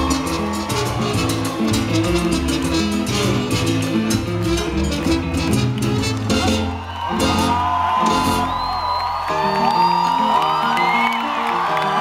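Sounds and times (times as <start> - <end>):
crowd cheering and whooping: 0.0 - 4.1, 6.1 - 12.0
salsa band playing live: 0.0 - 11.9.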